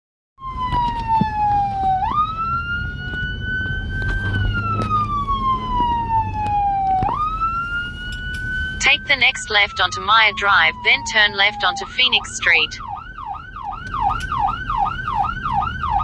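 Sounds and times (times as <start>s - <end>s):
electronic siren wailing: 0.4s - 16.0s
vehicle rumble: 0.4s - 16.0s.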